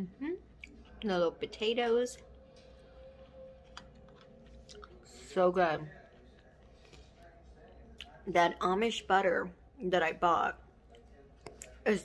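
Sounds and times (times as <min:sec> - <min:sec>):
person chewing food: 0:02.2 - 0:05.3.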